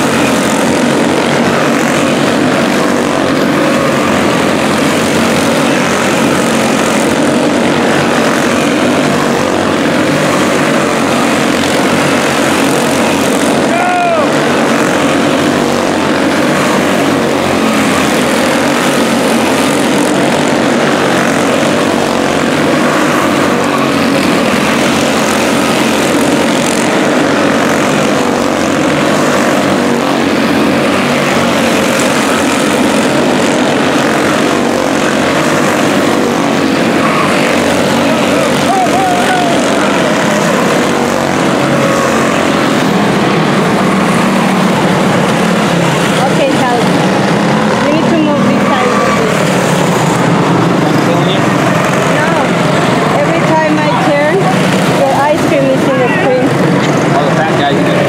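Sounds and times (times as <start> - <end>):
race car engines buzzing: 0.0 - 58.0.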